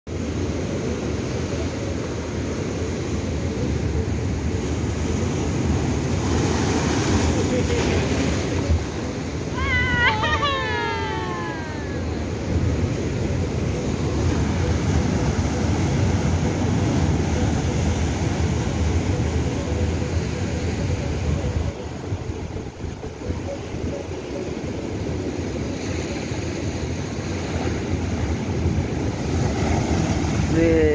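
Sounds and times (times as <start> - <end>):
ocean waves breaking on rocks: 0.1 - 30.9
high voice-like cry: 9.5 - 12.1.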